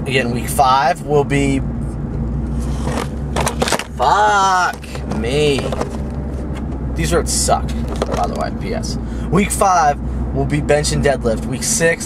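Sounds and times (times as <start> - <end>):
car road and engine rumble: 0.0 - 12.0
knocks and rattles on rough road: 1.8 - 8.9.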